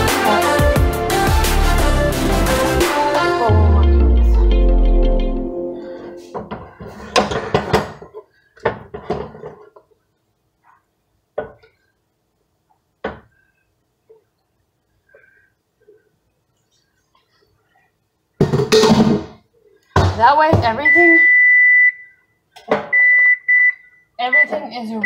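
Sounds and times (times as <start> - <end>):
electronic music: 0.0 - 6.3.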